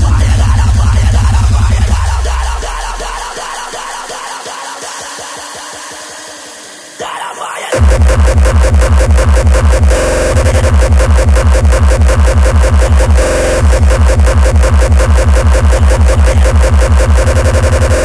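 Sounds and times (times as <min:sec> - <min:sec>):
heavy distorted kick drums: 0:00.0 - 0:03.5, 0:07.8 - 0:18.0
sustained synth tone: 0:07.8 - 0:18.0.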